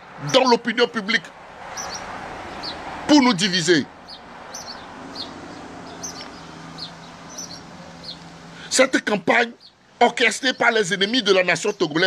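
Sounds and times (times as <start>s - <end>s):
small bird chirping: 1.7s - 2.8s, 4.0s - 8.4s, 9.5s - 10.8s.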